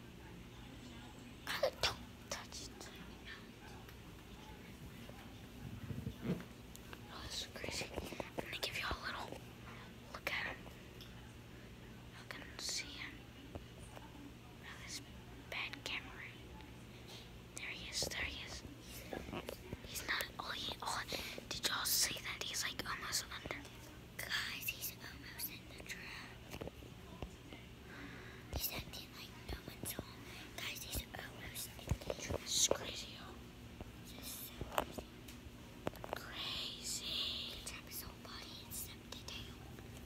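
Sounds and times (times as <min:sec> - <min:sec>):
faint low hum: 0:00.0 - 0:40.0
person whispering: 0:01.4 - 0:03.7, 0:07.1 - 0:09.4, 0:17.1 - 0:26.4, 0:28.5 - 0:33.4, 0:36.0 - 0:39.6.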